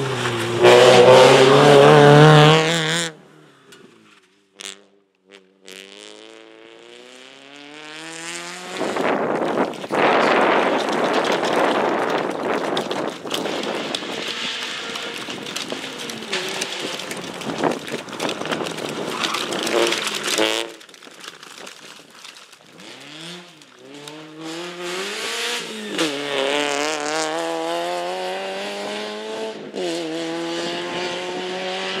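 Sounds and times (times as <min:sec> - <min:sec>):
tyres on gravel: 0:00.0 - 0:04.4, 0:07.0 - 0:28.8
rally car engine at full throttle: 0:00.0 - 0:21.5, 0:22.3 - 0:32.0.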